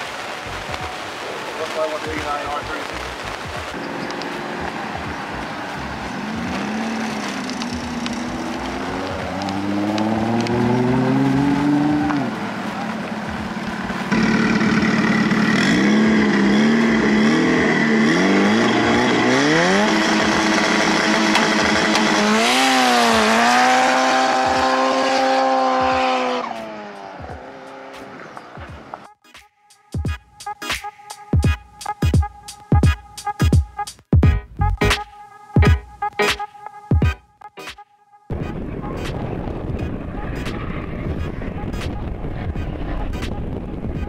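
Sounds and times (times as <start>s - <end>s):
car engine accelerating hard: 3.8s - 28.4s.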